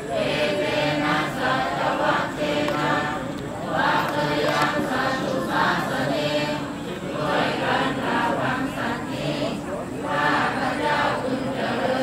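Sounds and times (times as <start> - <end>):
group chanting in unison: 0.0 - 12.0.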